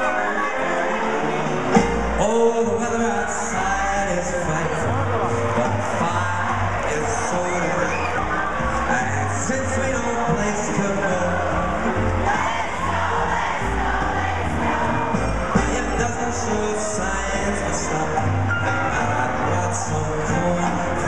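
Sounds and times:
crowd noise: 0.0 - 21.0
live band music over loudspeakers: 0.0 - 21.0.

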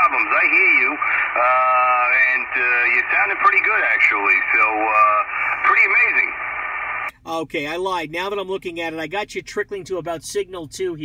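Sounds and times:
radio receiver hiss: 0.0 - 7.1
man's voice over radio speaker: 0.0 - 11.0.

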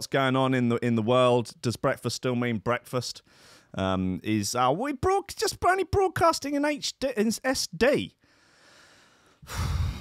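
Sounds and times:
man sighing: 9.4 - 10.0.

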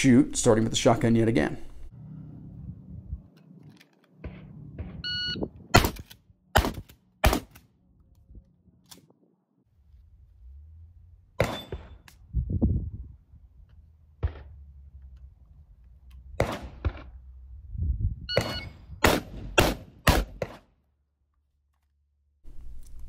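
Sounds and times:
short electronic beep: 5.0 - 5.5, 18.3 - 18.8
shotgun shots: 5.7 - 7.6, 11.4 - 12.0, 16.4 - 17.2, 18.4 - 20.7.

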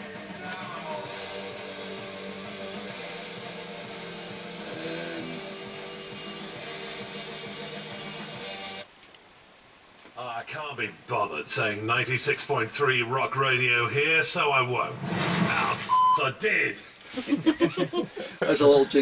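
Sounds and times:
radio jingle with rock guitar: 0.0 - 8.8, 10.2 - 17.0.

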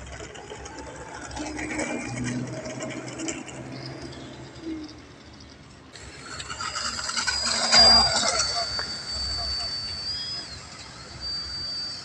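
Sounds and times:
model plane motor whine: 5.9 - 12.0.

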